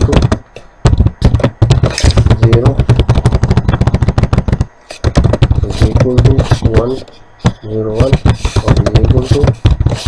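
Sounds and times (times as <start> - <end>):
keyboard typing: 0.0 - 10.0.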